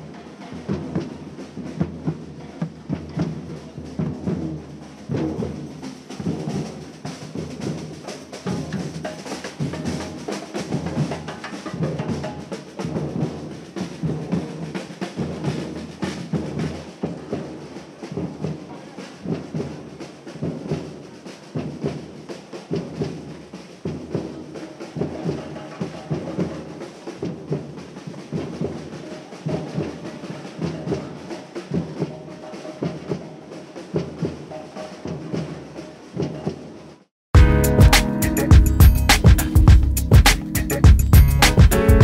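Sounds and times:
street drumming group: 0.0 - 42.0
bass drums struck with mallets: 37.4 - 42.0.

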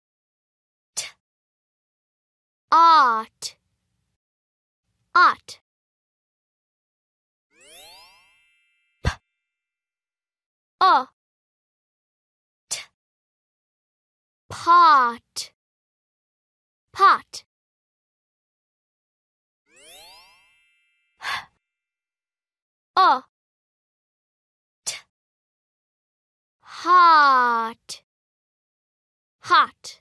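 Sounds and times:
high tone: 7.6 - 9.0, 19.7 - 21.2
rising whistle glide into chime: 7.6 - 9.0, 19.7 - 21.2.

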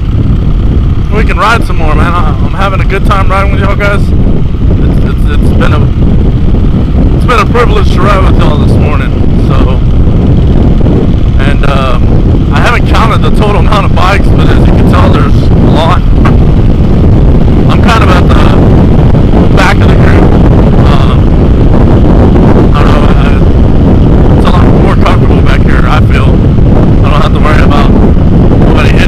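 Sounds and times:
motorcycle engine running: 0.0 - 29.0
wind buffeting microphone: 0.0 - 29.0.

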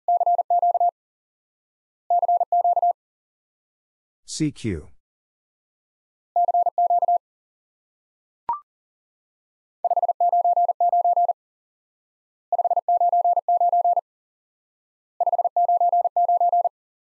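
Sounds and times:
morse code beeping: 0.1 - 0.9.

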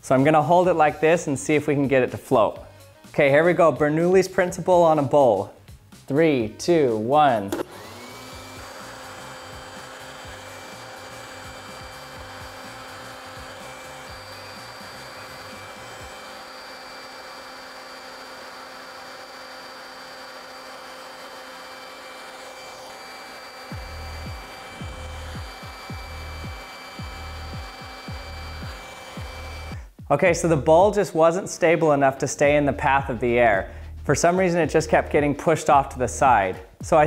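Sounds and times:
leaf blower running: 7.0 - 30.0.

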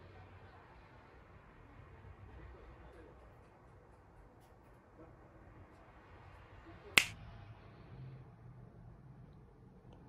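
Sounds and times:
finger snap: 7.0 - 7.2.

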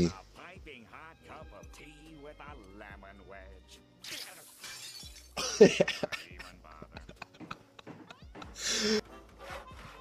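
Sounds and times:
cartoon glass shattering: 4.0 - 5.3.

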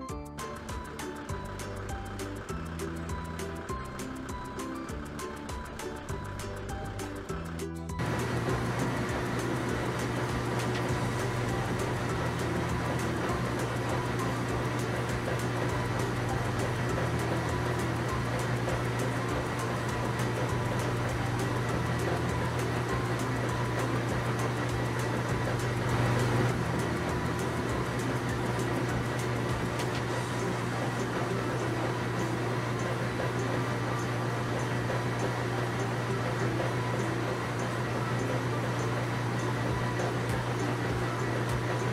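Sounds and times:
heavy vehicle engine hum: 0.4 - 41.9.

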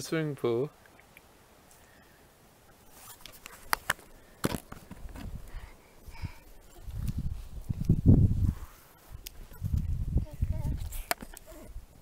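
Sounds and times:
camera handling noise: 3.0 - 5.4.

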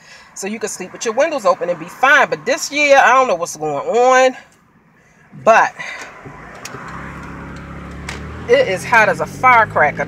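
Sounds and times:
car engine hum: 0.0 - 10.0
road noise inside car: 0.0 - 10.0.

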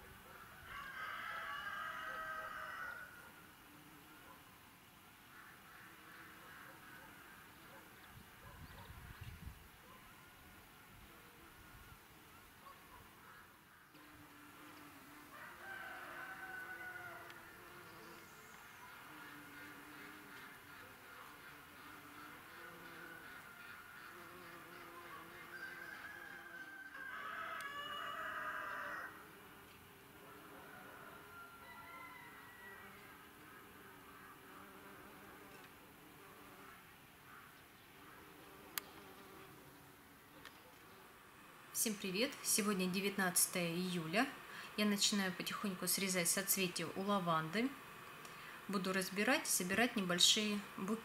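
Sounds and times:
rooster crowing: 0.6 - 3.4, 15.3 - 17.8, 25.5 - 29.3, 30.5 - 33.3
bees buzzing: 13.2 - 51.0.

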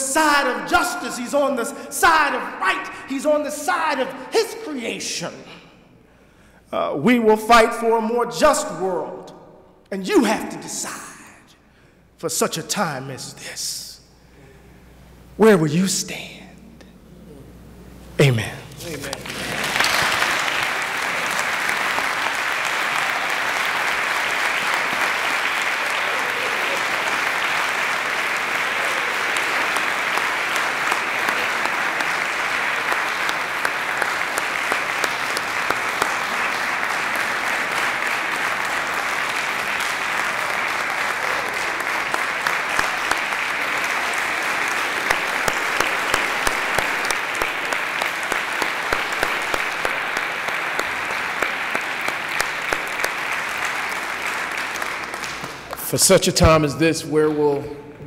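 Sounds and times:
large audience applauding: 18.8 - 56.0
sharp single claps: 45.0 - 53.2.

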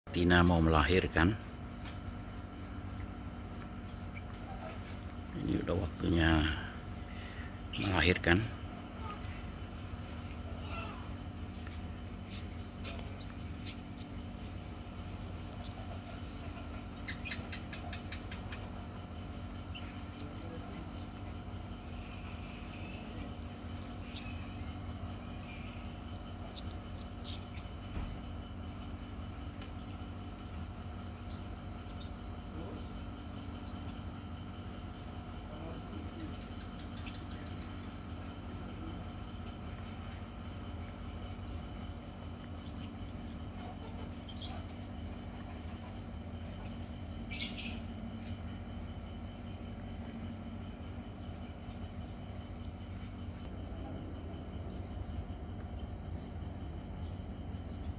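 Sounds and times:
small birds chirping: 0.1 - 57.9
steady low hum: 0.1 - 57.9.

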